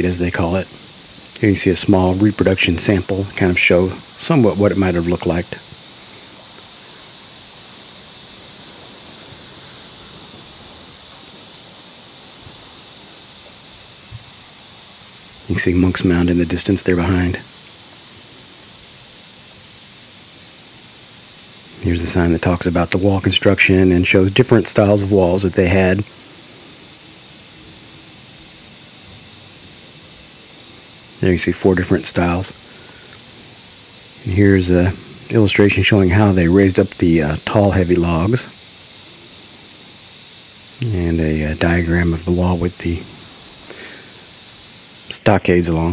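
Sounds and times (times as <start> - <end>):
outdoor background hiss: 0.0 - 45.9.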